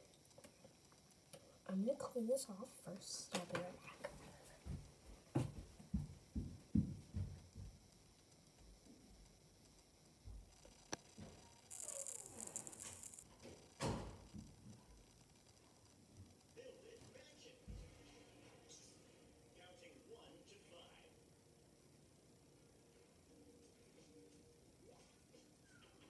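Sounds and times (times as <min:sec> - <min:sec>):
heavy footsteps on floor: 0:04.6 - 0:07.8.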